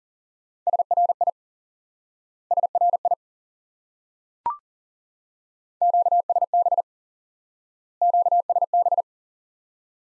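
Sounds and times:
morse code beeps: 5.8s - 6.8s, 8.0s - 9.0s.

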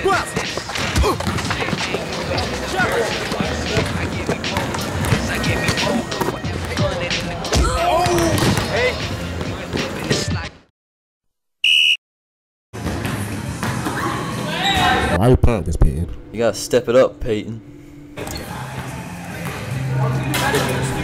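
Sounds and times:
shoes on court: 0.0s - 6.4s.

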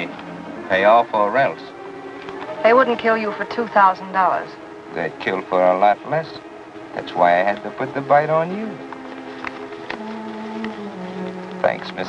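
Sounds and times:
film score with sustained low notes: 0.0s - 12.0s.

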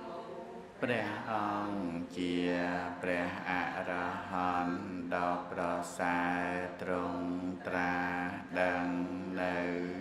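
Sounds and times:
man chanting: 0.8s - 10.0s.

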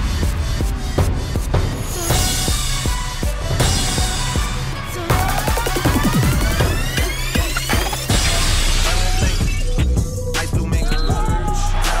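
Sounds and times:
electronic music with heavy beat: 0.0s - 12.0s.

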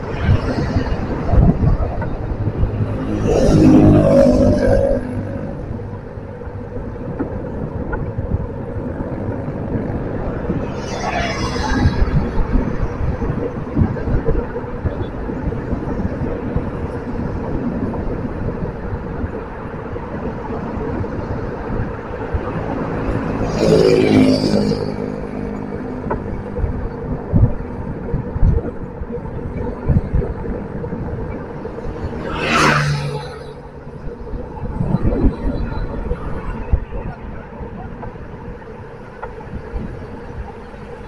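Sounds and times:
nearby vehicles passing: 0.0s - 41.0s
vehicle road and engine rumble: 0.0s - 41.0s.

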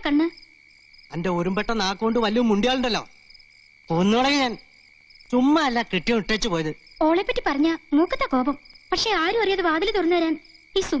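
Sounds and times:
people talking: 0.0s - 0.4s, 5.3s - 11.0s
crickets chirring: 0.0s - 11.0s.

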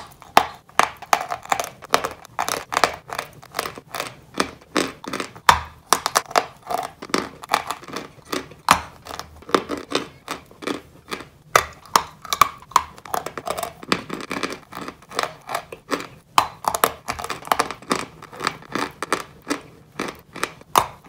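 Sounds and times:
crunching and chewing dessert: 0.0s - 21.0s.

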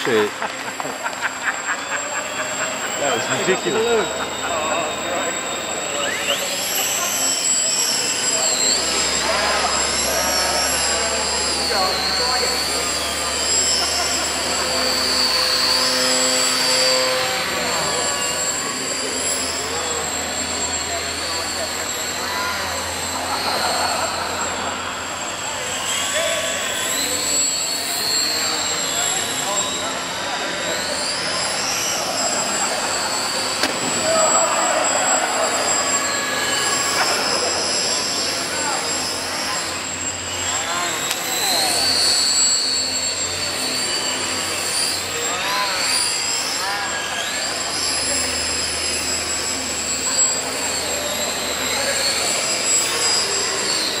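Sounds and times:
small propeller motors whining: 0.0s - 54.0s
steady high tone: 0.0s - 54.0s.

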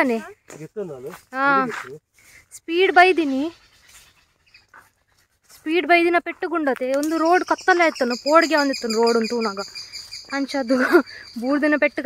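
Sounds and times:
quiet outdoor background: 0.0s - 12.0s.

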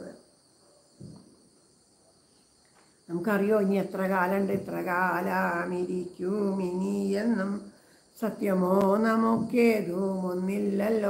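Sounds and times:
faint high-pitched hiss: 0.0s - 11.0s
woman singing: 3.1s - 11.0s.

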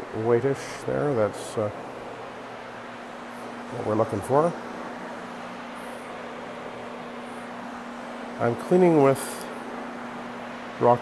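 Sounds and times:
carpet cleaning machine running: 0.0s - 11.0s.

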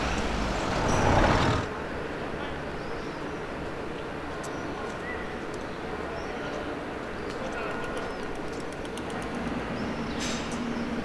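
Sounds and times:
birds chirping: 0.0s - 1.7s
traffic hum: 0.0s - 11.0s.

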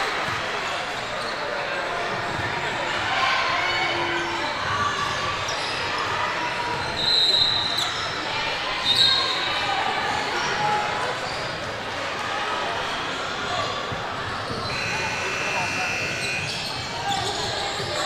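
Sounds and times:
chatter of voices: 0.0s - 18.0s.

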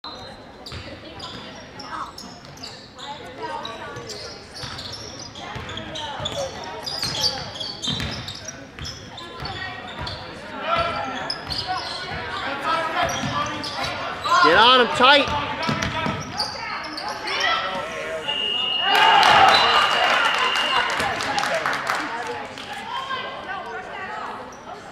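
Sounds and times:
voices echoing in gym: 0.0s - 24.9s
sneaker squeaks: 0.1s - 21.1s
basketball bouncing: 7.9s - 8.2s, 15.3s - 16.2s
players and spectators shouting: 11.8s - 16.5s, 17.2s - 21.0s
referee's whistle blast: 18.2s - 21.1s.

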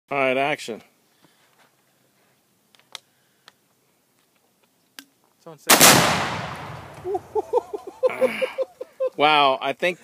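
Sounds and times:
explosion boom echoing: 5.7s - 7.4s.

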